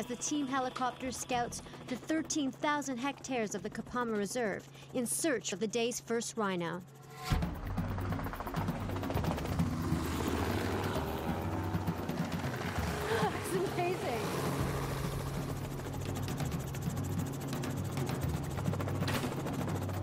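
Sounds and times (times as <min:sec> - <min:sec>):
helicopter engine and rotor: 0:00.0 - 0:20.0.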